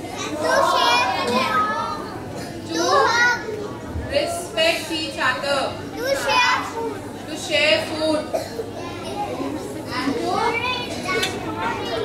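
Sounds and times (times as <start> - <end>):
young children speaking: 0.0 - 4.4, 5.8 - 12.0.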